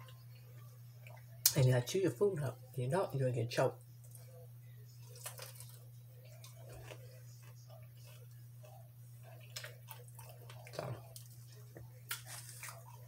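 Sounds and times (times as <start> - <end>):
steady low hum: 0.0 - 13.0
chewing mouth sounds: 5.0 - 13.0.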